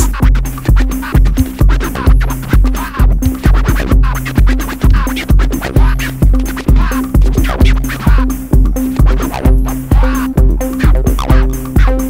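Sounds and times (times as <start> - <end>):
electronic dance music: 0.0 - 12.0
heavy kick drum: 0.0 - 12.0
sustained bass line: 0.0 - 12.0.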